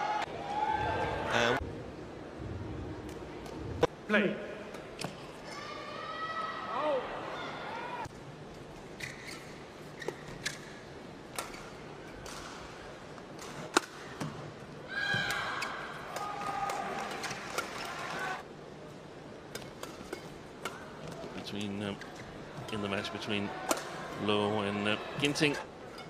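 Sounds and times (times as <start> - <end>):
shoes squeaking on court: 9.0 - 10.8.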